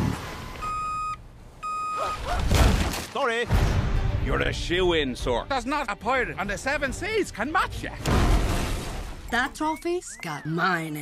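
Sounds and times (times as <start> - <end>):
electronic beeps: 9.3 - 11.0.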